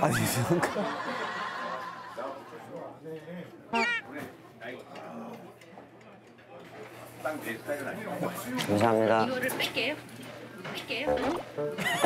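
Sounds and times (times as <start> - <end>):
loud pitched cry: 3.7 - 4.1.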